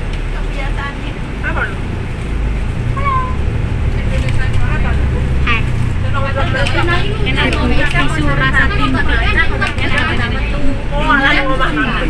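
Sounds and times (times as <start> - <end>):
bus engine and road rumble: 0.0 - 12.0
voices: 0.0 - 12.0.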